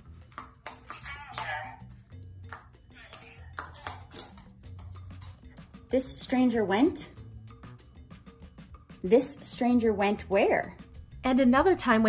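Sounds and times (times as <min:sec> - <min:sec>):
background music with bass line: 0:03.5 - 0:12.0.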